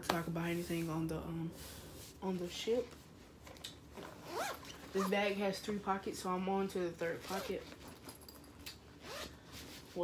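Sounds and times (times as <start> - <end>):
backpack zipper pulled open: 4.1 - 5.1, 9.0 - 9.3.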